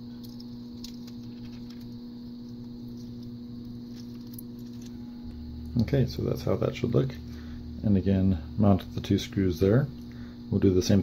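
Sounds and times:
low electrical hum: 0.0s - 11.0s
plastic parts clicking and scraping: 0.1s - 2.0s.

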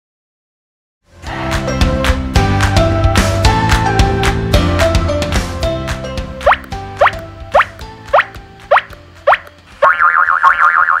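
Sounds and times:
light playful background music: 1.1s - 11.0s
fast wobbling warble: 6.5s - 11.0s.

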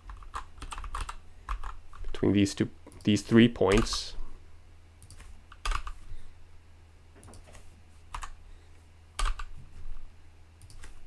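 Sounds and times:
typing on computer keyboard: 0.0s - 1.8s, 5.0s - 6.0s, 7.2s - 8.4s, 9.2s - 9.5s.

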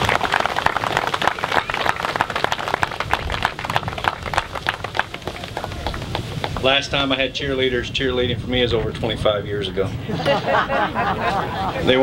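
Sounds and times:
crowd applauding: 0.0s - 6.8s.

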